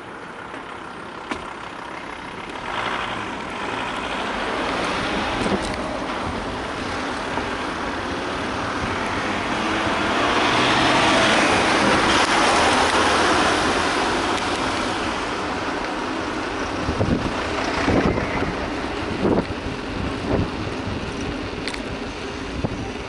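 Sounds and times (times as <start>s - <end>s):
van passing: 0.0s - 23.0s
wind rushing on camera: 0.2s - 23.0s.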